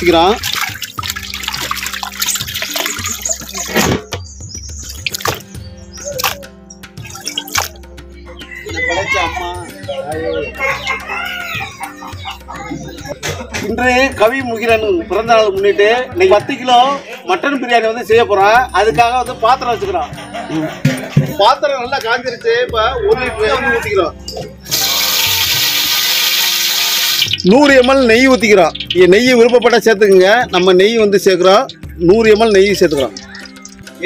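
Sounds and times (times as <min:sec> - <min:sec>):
background music: 0:00.0 - 0:34.0
rooster crowing: 0:08.4 - 0:09.5, 0:10.4 - 0:12.0
liquid hissing in hot pot: 0:24.7 - 0:27.4.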